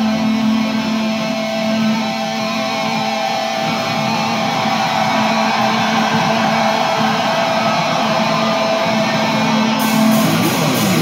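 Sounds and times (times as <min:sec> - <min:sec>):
distorted electric guitars ringing: 0:00.0 - 0:11.0
heavy metal band playing: 0:00.0 - 0:11.0.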